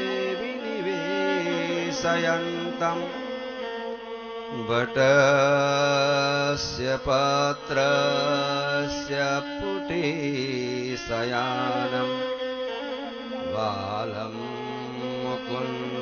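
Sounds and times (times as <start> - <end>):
devotional singing: 0.0 - 3.4, 4.5 - 12.3, 13.1 - 16.0.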